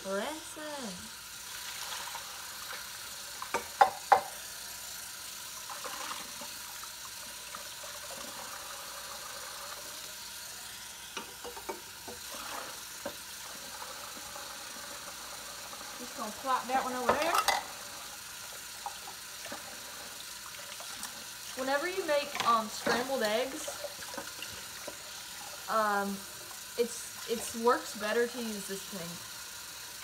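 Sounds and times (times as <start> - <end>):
tap water running into sink: 1.1 - 30.0
dishes clinking together: 17.1 - 17.7.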